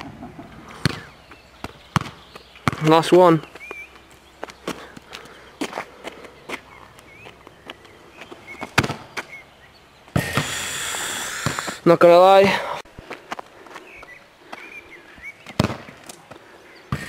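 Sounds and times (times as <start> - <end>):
footsteps on asphalt: 0.3 - 11.8, 12.9 - 16.5
sharp thud: 10.2 - 10.7.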